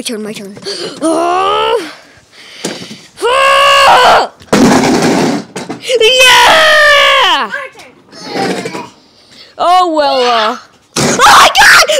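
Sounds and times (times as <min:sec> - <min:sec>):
child's high-pitched exclamation: 0:05.9 - 0:09.0, 0:09.6 - 0:11.9.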